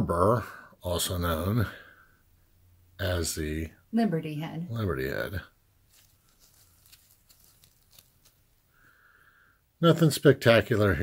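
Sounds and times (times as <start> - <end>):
faint ticks and rustles of fingers: 5.9 - 8.6.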